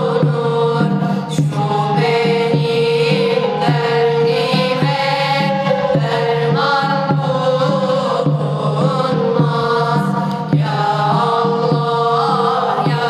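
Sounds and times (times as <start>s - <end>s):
boys chanting in unison: 0.0s - 13.0s
held drone note: 0.0s - 13.0s.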